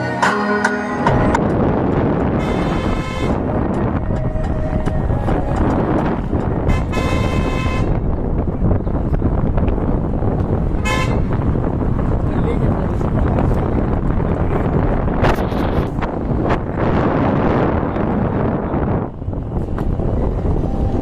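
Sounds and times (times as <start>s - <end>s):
vehicle road and engine rumble: 0.0s - 21.0s
car horn honking: 2.3s - 3.6s, 6.6s - 8.1s, 10.8s - 11.4s.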